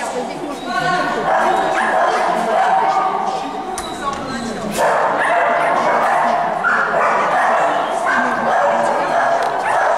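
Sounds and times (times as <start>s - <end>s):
dog barking and yipping: 1.2s - 3.5s, 4.8s - 9.9s.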